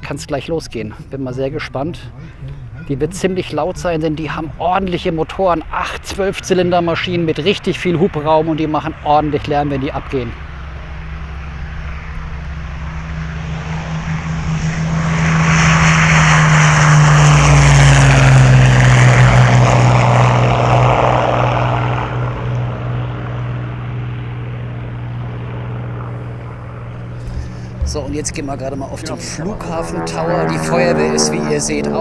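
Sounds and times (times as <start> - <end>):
propeller airplane taking off: 0.0 - 32.0.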